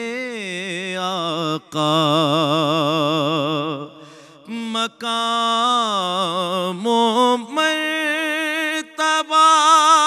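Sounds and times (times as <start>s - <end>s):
man singing solo with vibrato: 0.0s - 10.0s.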